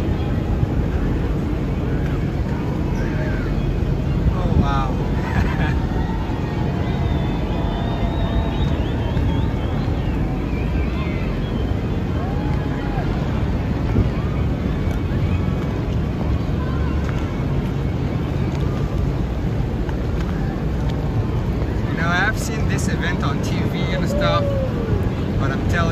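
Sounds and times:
boat engine running: 0.0 - 21.9
faint voices: 0.0 - 25.9
wind on microphone: 0.0 - 25.9.

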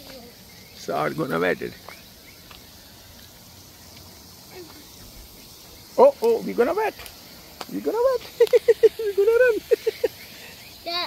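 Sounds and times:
sprinkler spraying hiss: 0.0 - 11.0.

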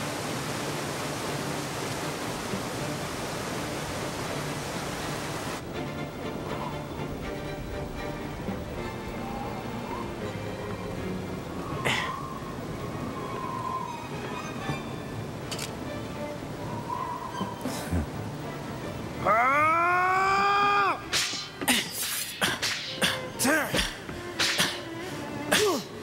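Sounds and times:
background music: 0.0 - 26.0
sword swishes and strikes: 21.1 - 23.1, 23.8 - 24.8.

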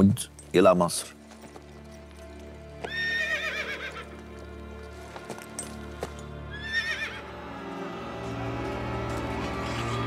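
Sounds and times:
background music: 0.0 - 10.0
horse whinnying: 2.8 - 4.1, 6.5 - 7.2.

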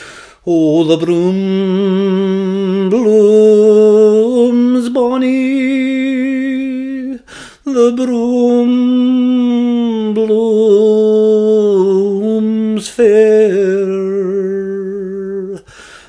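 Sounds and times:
quick breaths: 0.0 - 0.5, 7.2 - 7.7, 15.6 - 16.0
man singing unaccompanied: 0.3 - 15.7.

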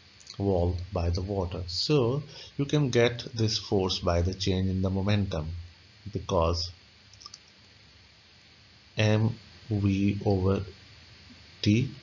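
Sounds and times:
faint short clicks: 7.1 - 7.6.

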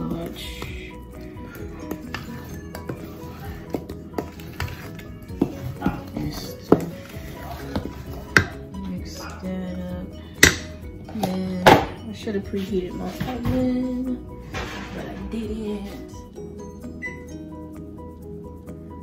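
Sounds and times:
background music: 0.0 - 19.0.

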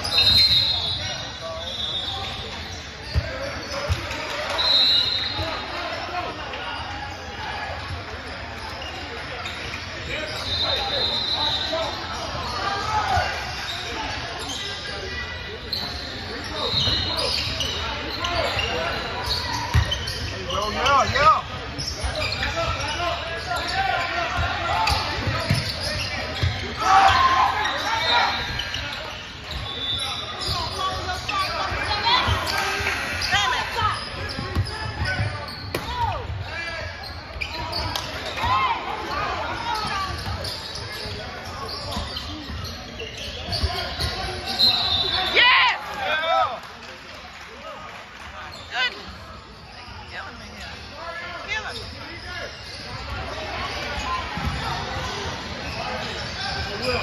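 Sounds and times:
sneakers squeaking on court: 0.0 - 45.9, 48.4 - 57.0.

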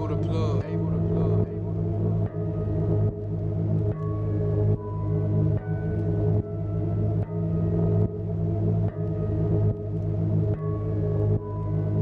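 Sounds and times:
ambient synth music with bass: 0.0 - 12.0.

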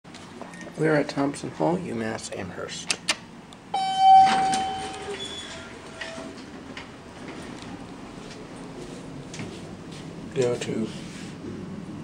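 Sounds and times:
fainter lower tone: 3.8 - 6.3
elevator chime ding: 3.8 - 6.4.

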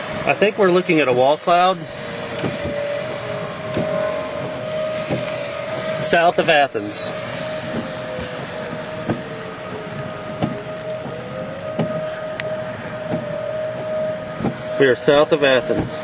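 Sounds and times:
tornado sirens wailing: 0.0 - 16.0
soft regular knocks: 7.7 - 9.4, 10.4 - 13.4, 14.4 - 14.6.

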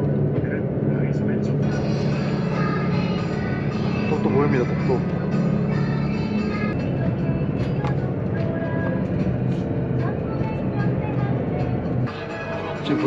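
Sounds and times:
background music: 0.0 - 13.0
ferry engines droning: 0.0 - 13.0.

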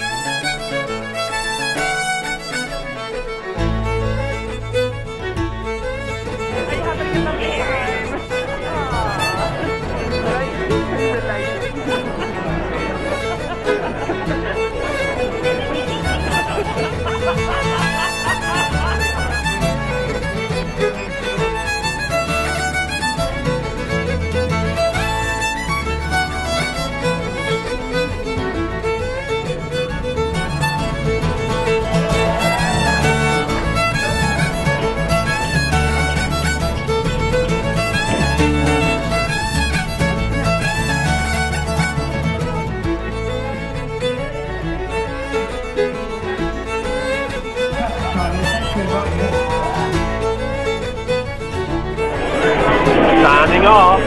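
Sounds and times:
folk band with fiddle: 0.0 - 54.0.

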